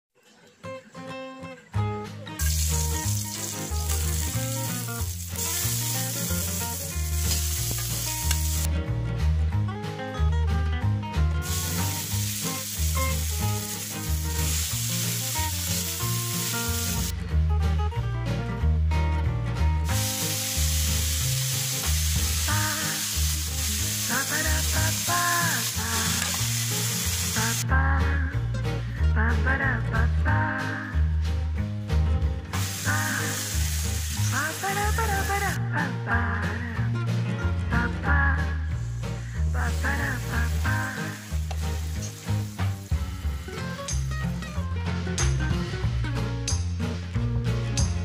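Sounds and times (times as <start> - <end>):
background music: 0.4 - 48.0
hot oil sizzling in a wok: 2.4 - 8.7, 11.4 - 17.1, 19.8 - 27.6, 32.5 - 35.6, 39.0 - 44.2.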